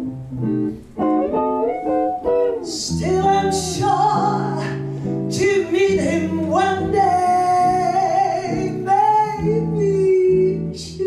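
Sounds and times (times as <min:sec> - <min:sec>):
guitar accompaniment: 0:00.0 - 0:11.0
woman singing jazz: 0:02.6 - 0:11.0.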